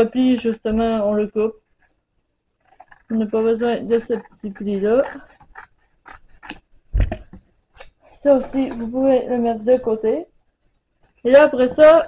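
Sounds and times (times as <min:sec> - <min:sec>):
cardboard rustling: 0:02.6 - 0:09.0.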